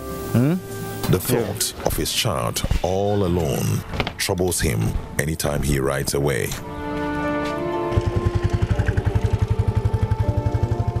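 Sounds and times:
small motorcycle engine pulling away: 0:07.7 - 0:11.0.

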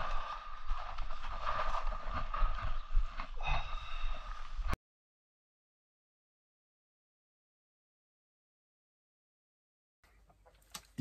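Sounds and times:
wind buffeting microphone: 0:00.0 - 0:04.8.

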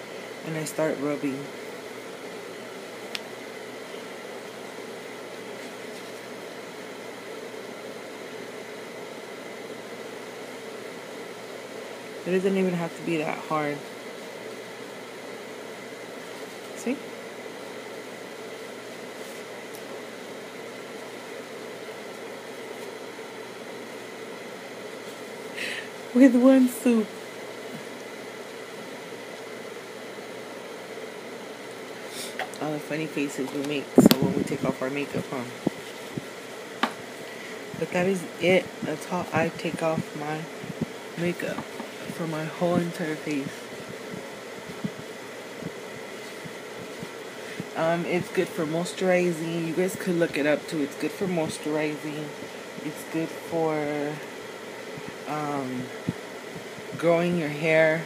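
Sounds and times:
fan-like hiss: 0:00.0 - 0:58.0.

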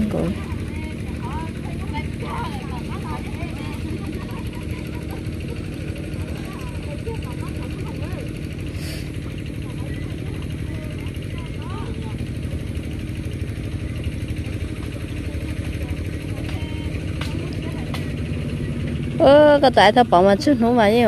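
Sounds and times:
engine running steadily: 0:00.0 - 0:21.0
faint voices: 0:00.0 - 0:21.0.

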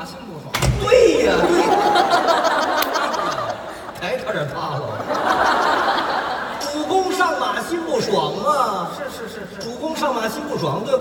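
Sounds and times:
man speaking: 0:00.0 - 0:02.0, 0:03.9 - 0:05.1, 0:06.6 - 0:11.0
audience laughing: 0:01.1 - 0:08.1.

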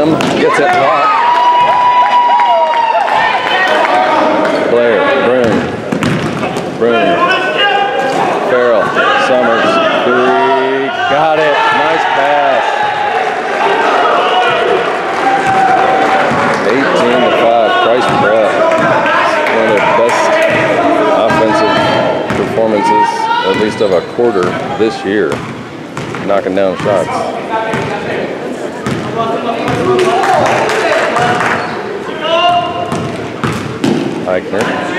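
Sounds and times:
voices calling out and chattering: 0:00.0 - 0:34.9
basketball bouncing on court: 0:05.4 - 0:06.7, 0:18.0 - 0:19.1, 0:20.2 - 0:22.6, 0:24.4 - 0:24.7, 0:25.3 - 0:27.1, 0:27.7 - 0:28.0, 0:28.8 - 0:30.0, 0:32.5 - 0:34.8.

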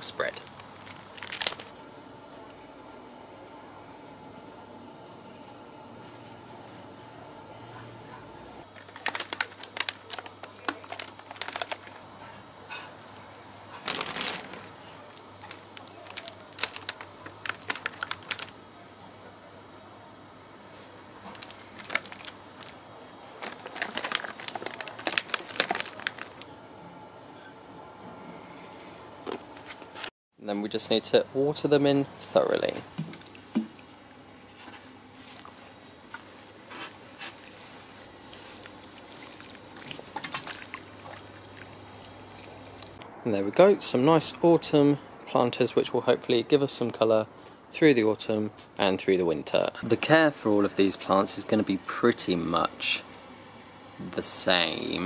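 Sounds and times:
plastic plant trays crinkling: 0:00.0 - 0:01.8, 0:08.6 - 0:12.1, 0:13.6 - 0:18.6, 0:21.2 - 0:26.5, 0:36.7 - 0:43.0.

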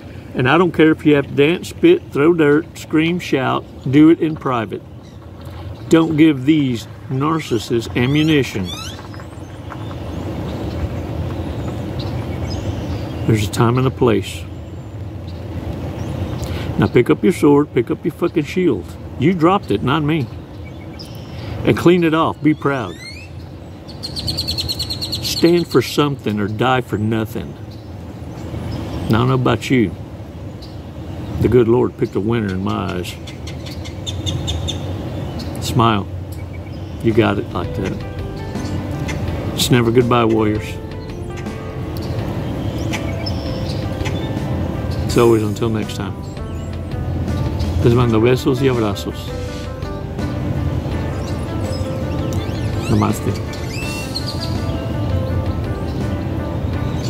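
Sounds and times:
low rumble of outdoor background noise: 0:00.0 - 0:57.0
small bird chirping: 0:07.9 - 0:13.4, 0:40.7 - 0:45.1, 0:51.0 - 0:56.1.

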